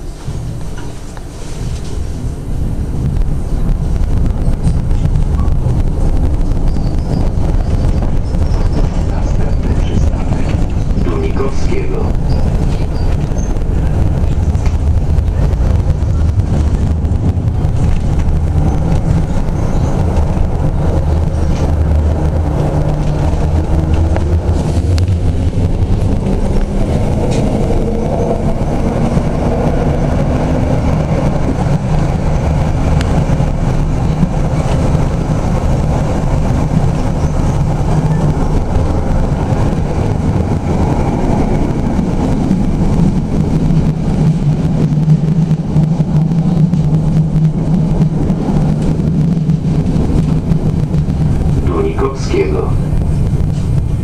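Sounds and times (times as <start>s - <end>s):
tram motor tones rising: 0.0s - 54.0s
tram running on rails: 0.0s - 54.0s.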